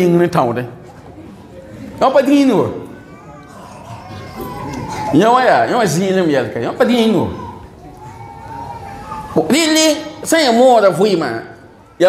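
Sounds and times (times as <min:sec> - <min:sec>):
man preaching into a microphone: 0:00.0 - 0:00.8, 0:02.0 - 0:02.9, 0:05.0 - 0:07.6, 0:09.4 - 0:11.6.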